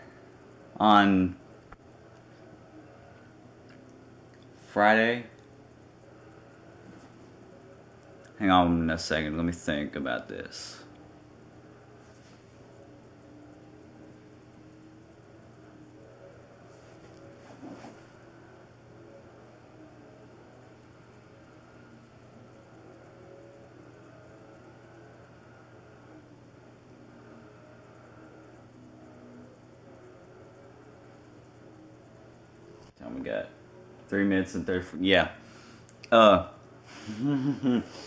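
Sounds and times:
steady low hum: 0.0 - 38.0.

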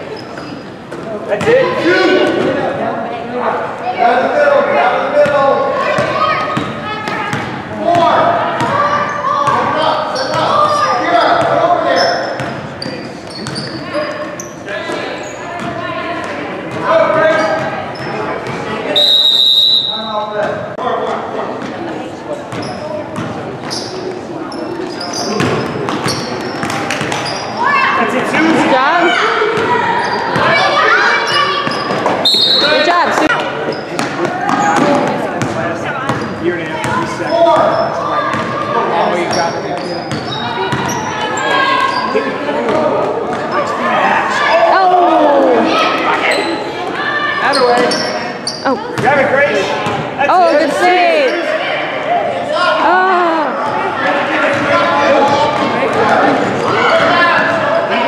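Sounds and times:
shrill whistle: 19.0 - 20.1, 32.2 - 32.8
people calling out: 43.5 - 49.0, 50.3 - 58.0.

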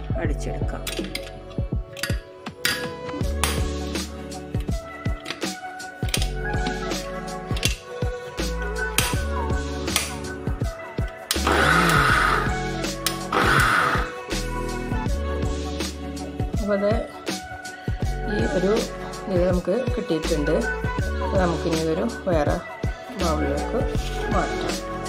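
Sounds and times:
background music with beat: 0.0 - 25.0
mixer grinder running: 11.4 - 12.6, 13.3 - 14.2.

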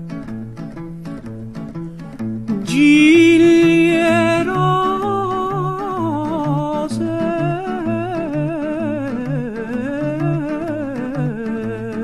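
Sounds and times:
person singing with vibrato: 2.6 - 12.0.

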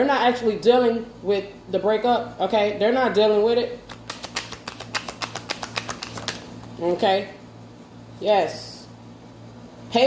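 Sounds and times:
cards being shuffled: 3.9 - 6.8.

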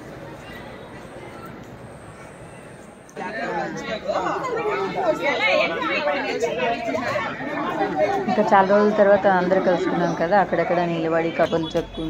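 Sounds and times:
group of people chatting: 0.0 - 12.0.

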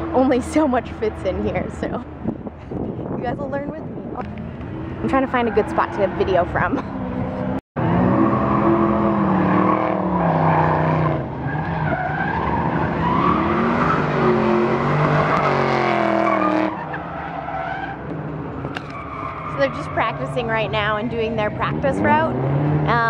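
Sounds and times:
car engines revving: 0.0 - 23.0
tyres squealing: 18.6 - 20.7.

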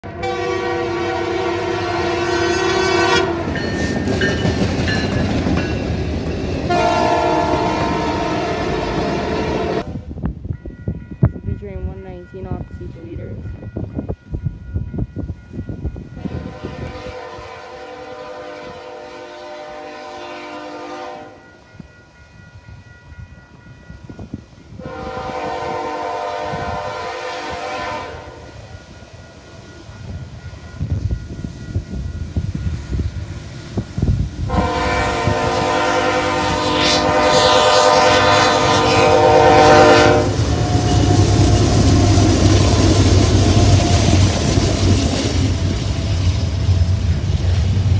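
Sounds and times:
train air horn blast: 0.0 - 3.6, 6.7 - 10.0, 16.2 - 21.4, 24.8 - 28.6, 34.5 - 41.4
freight train rumble: 0.0 - 47.9
crossing warning bell ringing: 0.2 - 18.4, 20.8 - 45.8.

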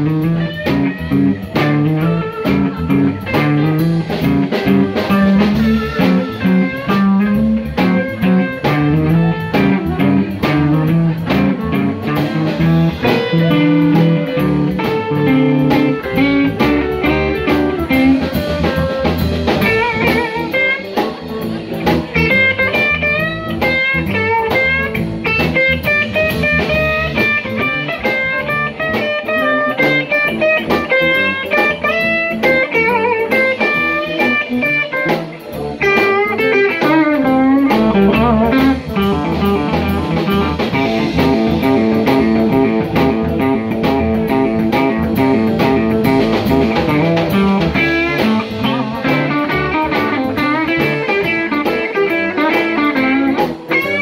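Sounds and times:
electric guitar solo: 0.0 - 54.0
live blues band playing: 0.0 - 54.0.

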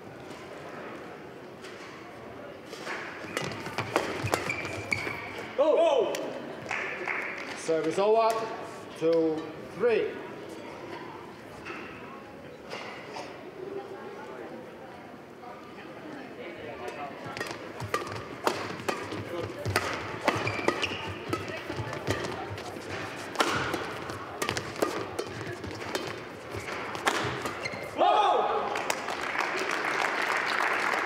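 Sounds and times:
racket hitting shuttlecock: 2.8 - 5.5, 17.3 - 28.0.

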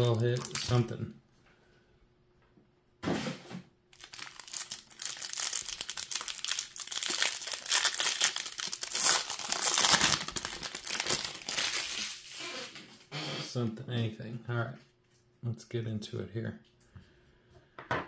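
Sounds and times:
plastic wrapper tearing and crinkling: 0.0 - 1.0, 3.9 - 12.9.

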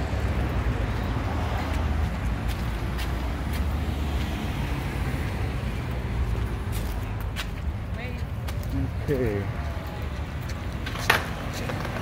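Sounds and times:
rumble of passing cars: 0.0 - 12.0.

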